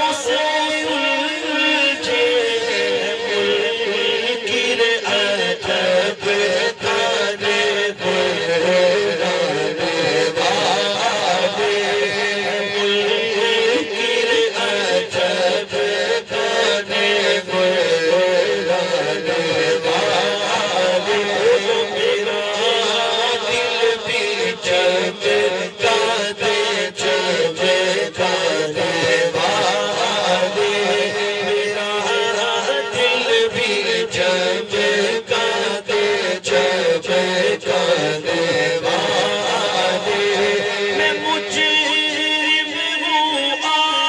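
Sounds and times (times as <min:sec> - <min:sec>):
man singing through a loudspeaker: 0:00.0 - 0:44.0.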